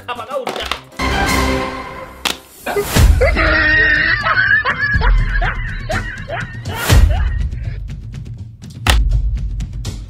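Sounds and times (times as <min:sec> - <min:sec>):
background music: 0:00.0 - 0:10.0
person snickering: 0:02.7 - 0:07.7.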